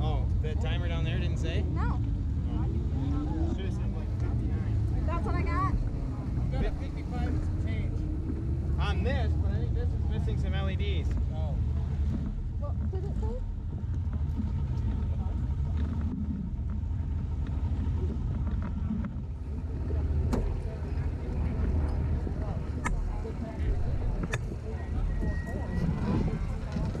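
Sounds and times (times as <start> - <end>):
faint voices: 0.0 - 27.0
race car engine idling: 0.0 - 27.0.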